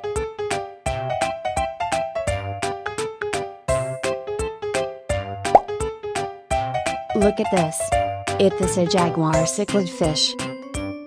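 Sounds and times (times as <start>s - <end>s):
upbeat children's music: 0.0s - 11.0s.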